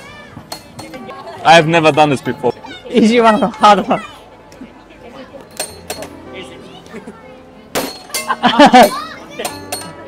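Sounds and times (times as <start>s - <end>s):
faint background voices: 0.0s - 7.9s.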